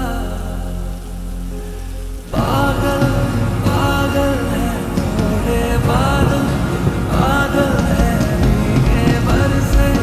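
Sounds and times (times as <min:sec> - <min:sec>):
person singing: 0:00.0 - 0:01.6, 0:02.3 - 0:10.0
low bass notes: 0:00.0 - 0:10.0
rain hiss: 0:00.0 - 0:10.0.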